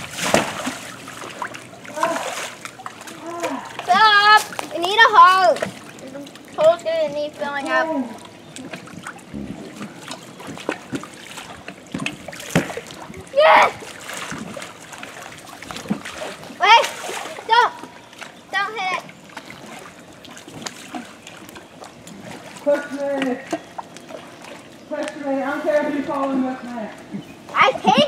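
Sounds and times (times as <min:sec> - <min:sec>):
pool water splashing: 0:00.0 - 0:28.0
children shouting: 0:13.3 - 0:13.8.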